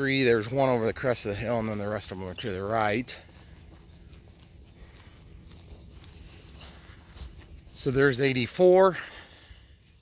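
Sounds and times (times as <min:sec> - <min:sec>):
footsteps through grass: 0:00.0 - 0:10.0.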